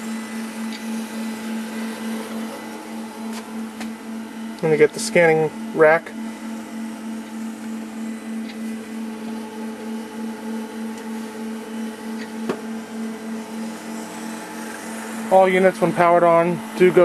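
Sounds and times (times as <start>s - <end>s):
pulsing motor hum: 0.0s - 17.0s.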